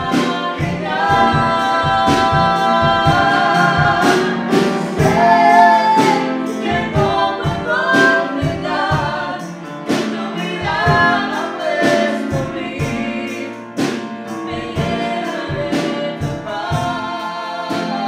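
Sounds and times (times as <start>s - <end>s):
woman singing gospel song: 0.0s - 9.5s, 10.2s - 13.5s, 14.5s - 18.0s
piano accompaniment: 0.0s - 18.0s.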